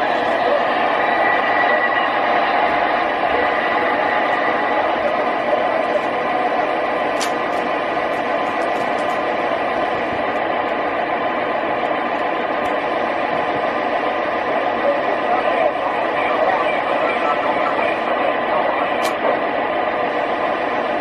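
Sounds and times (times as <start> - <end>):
model train running on track: 0.0 - 21.0.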